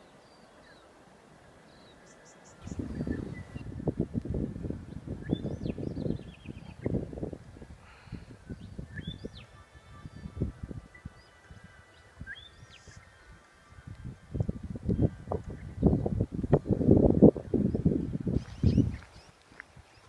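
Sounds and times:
birds chirping: 0.0s - 3.9s, 4.8s - 7.1s, 7.8s - 16.2s, 17.4s - 20.0s
wind buffeting microphone: 2.6s - 20.0s.

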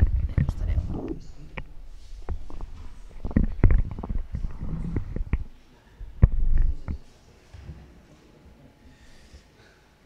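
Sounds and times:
microphone handling knocks: 2.3s - 5.5s.

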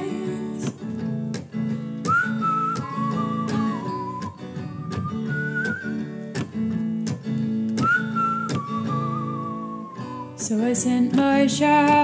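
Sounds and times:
whistled melody: 2.0s - 6.5s, 7.7s - 10.5s.

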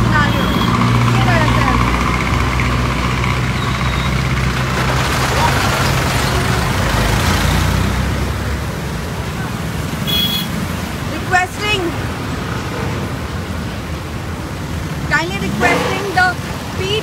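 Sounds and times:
bus engine running low: 0.0s - 17.0s
road noise: 0.0s - 17.0s.

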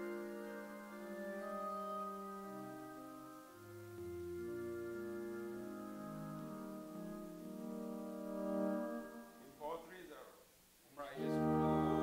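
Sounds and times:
soft organ-like keyboard chords: 0.0s - 10.0s, 11.0s - 12.0s.

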